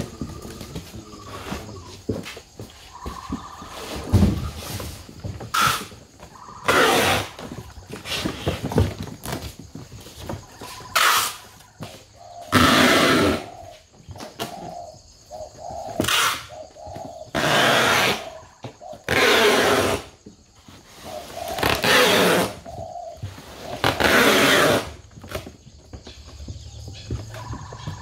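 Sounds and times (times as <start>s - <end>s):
doves cooing: 0.0s - 28.0s.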